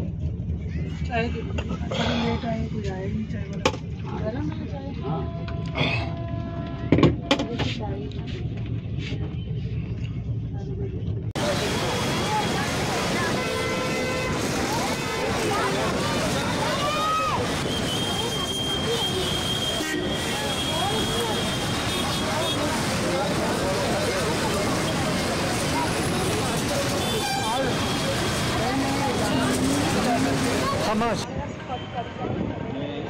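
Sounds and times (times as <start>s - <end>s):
busy street din: 0.0s - 33.0s
voices all around: 0.0s - 33.0s
vehicle horn: 5.1s - 7.2s, 11.6s - 16.8s, 17.9s - 22.8s, 26.9s - 28.4s
motorcycles passing: 11.4s - 31.2s.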